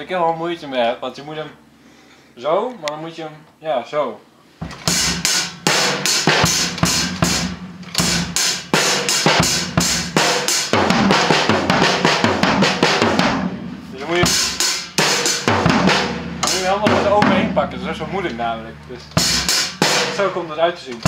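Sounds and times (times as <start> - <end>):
drum kit playing: 4.6 - 21.0
cymbal strokes: 4.9 - 10.8, 13.4 - 20.2.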